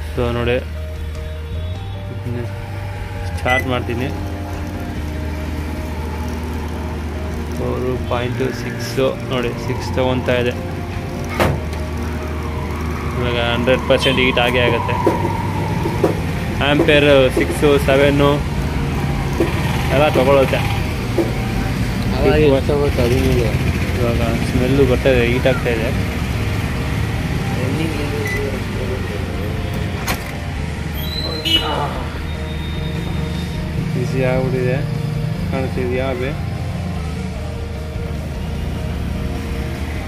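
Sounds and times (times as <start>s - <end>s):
man talking: 3.4s - 4.2s.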